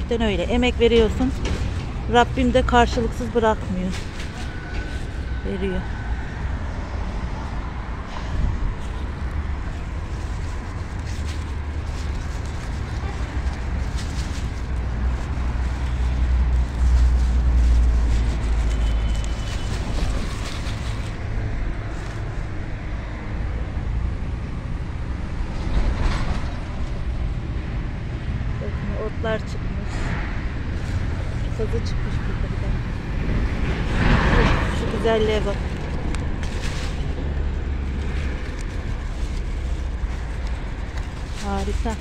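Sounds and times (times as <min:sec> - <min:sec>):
lettuce leaves rustling: 0:00.0 - 0:06.0, 0:08.6 - 0:22.4, 0:30.0 - 0:42.0
steady low rumble: 0:00.0 - 0:25.6, 0:26.5 - 0:42.0.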